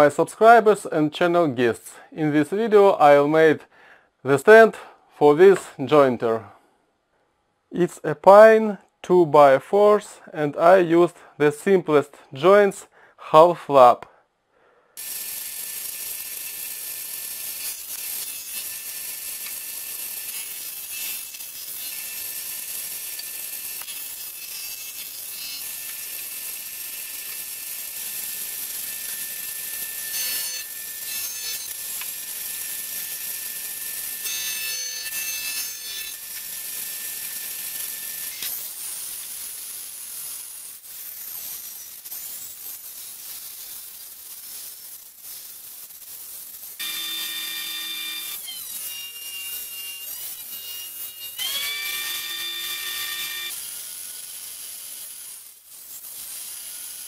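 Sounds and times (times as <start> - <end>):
electric jointer whining: 15.0 - 38.5, 46.8 - 55.3
table saw ripping wood: 15.0 - 57.0.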